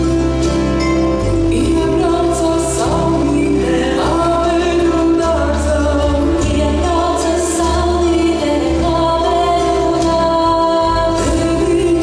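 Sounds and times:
instrumental accompaniment with bass: 0.0 - 12.0
group of voices singing: 1.5 - 12.0.

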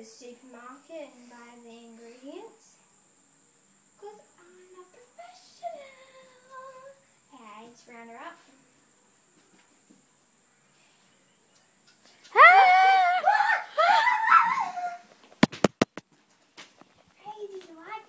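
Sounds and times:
girl screaming: 12.3 - 15.1
sharp knocks: 15.4 - 16.1.

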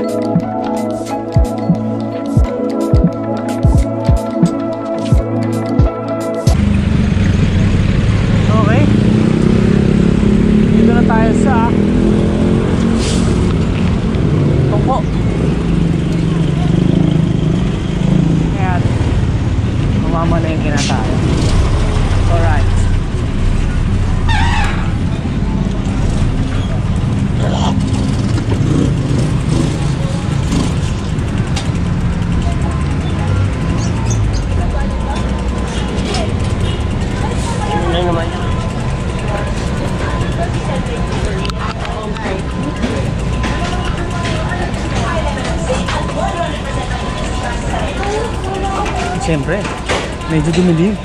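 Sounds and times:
low traffic rumble: 0.0 - 51.0
vehicle engine droning: 6.5 - 51.0.

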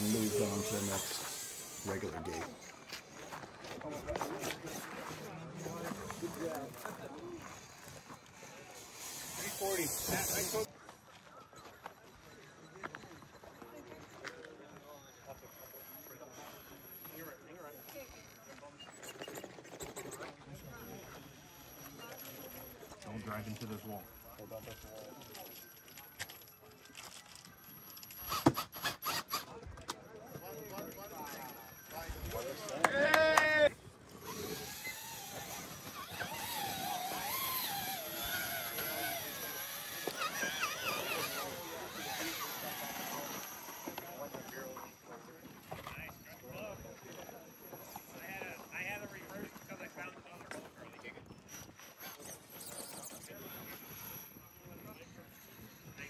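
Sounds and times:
onlookers talking: 0.0 - 28.4, 29.0 - 56.0.

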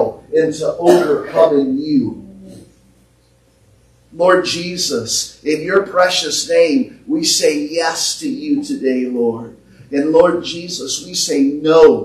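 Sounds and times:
person speaking a prayer: 0.0 - 2.7, 4.2 - 12.0.

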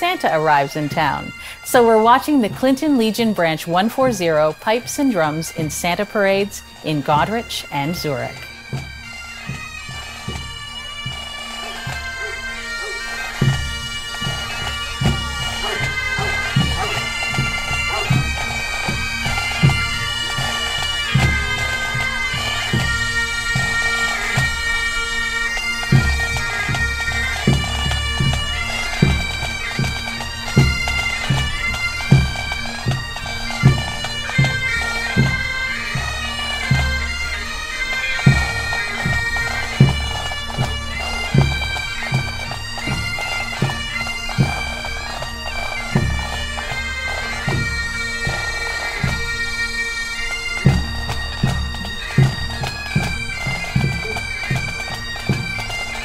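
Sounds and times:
bagpipes melody over drones: 0.0 - 56.0.

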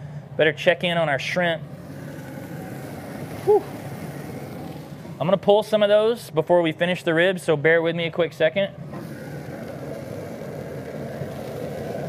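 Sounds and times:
steady hiss and low rumble: 0.0 - 12.0
man exhaling whew: 3.4 - 3.8.

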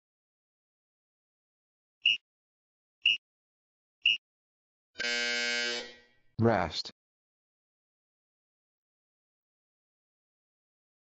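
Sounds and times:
timer buzzer tone: 5.0 - 6.1.

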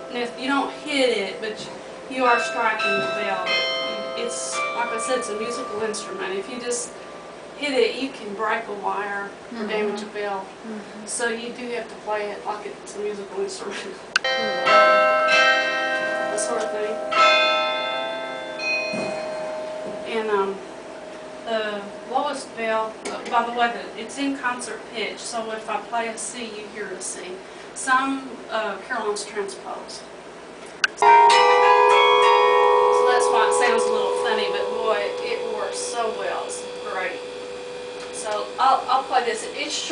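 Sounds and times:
carillon bells ringing: 0.0 - 8.7, 14.2 - 24.2, 31.0 - 39.9.

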